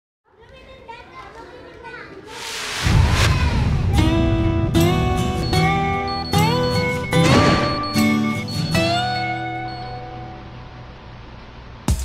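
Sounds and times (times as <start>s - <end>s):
children chattering: 0.3s - 2.4s
loud rushing rumble: 2.3s - 5.4s.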